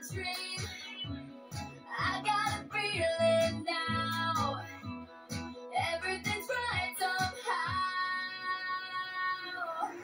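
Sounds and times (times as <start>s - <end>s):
woman singing: 0.0s - 1.0s, 1.9s - 4.8s, 5.7s - 10.0s
pop song: 0.0s - 10.0s
bass notes: 1.1s - 6.9s.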